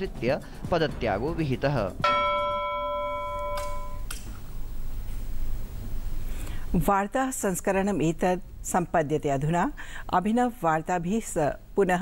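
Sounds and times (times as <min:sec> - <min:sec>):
bell-like chime: 0:02.0 - 0:04.1.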